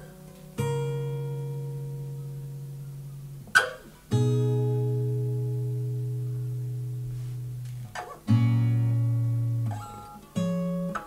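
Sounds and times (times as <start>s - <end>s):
acoustic guitar chord strummed: 0.0s - 11.0s.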